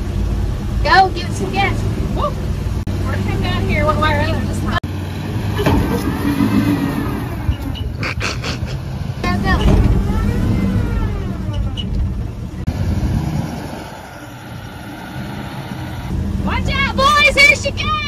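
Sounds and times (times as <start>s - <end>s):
truck engine revving: 0.0s - 18.0s.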